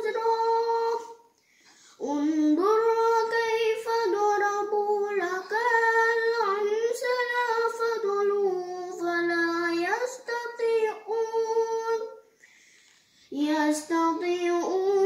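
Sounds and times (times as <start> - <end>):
boy chanting melodically: 2.0 - 12.2.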